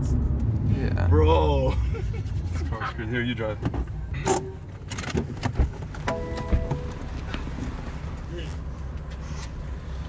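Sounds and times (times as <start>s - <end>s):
car doors and seats clicking: 3.7s - 7.8s
car engine idling: 5.6s - 10.0s
brief tone: 6.1s - 7.1s.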